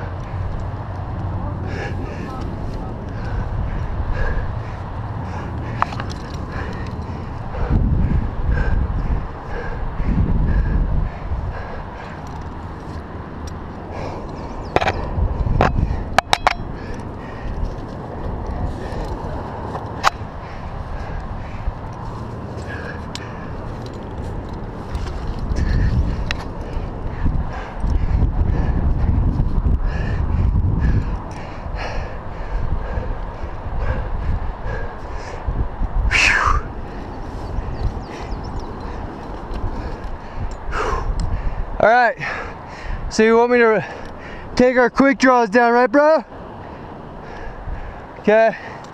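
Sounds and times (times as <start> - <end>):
wind and body movement rumble: 0.0 - 48.9
breathy voice: 1.3 - 12.5
climbing gear clinking on rock: 5.7 - 7.2, 14.2 - 20.2, 21.8 - 27.0.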